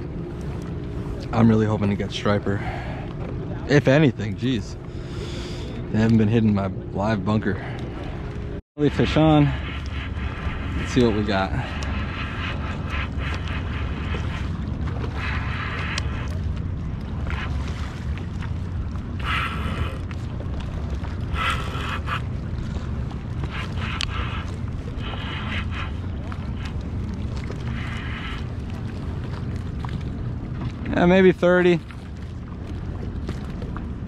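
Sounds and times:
wind rumble on microphone: 0.0s - 34.0s.

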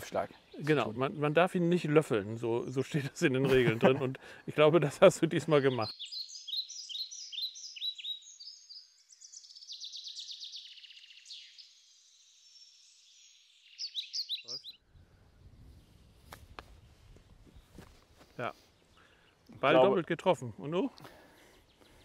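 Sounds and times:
songbirds chirping and singing: 0.0s - 3.0s, 4.2s - 15.7s, 18.5s - 22.0s
outdoor background noise: 0.0s - 22.0s.

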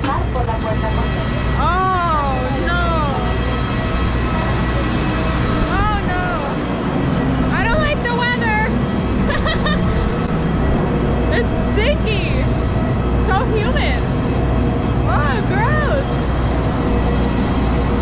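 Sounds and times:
aircraft hum and rush: 0.0s - 18.0s.

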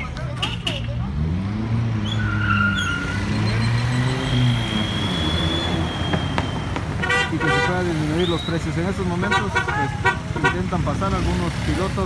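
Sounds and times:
car engine pulling away: 0.9s - 7.1s.

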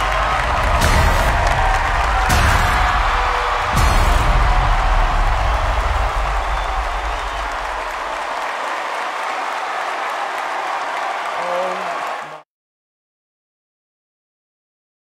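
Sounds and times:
audience applauding: 0.0s - 12.5s.

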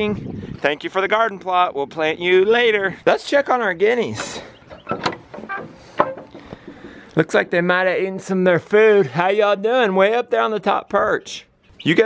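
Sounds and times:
metal bolt latch clicks: 4.2s - 6.4s
wooden door opening: 4.2s - 7.0s.

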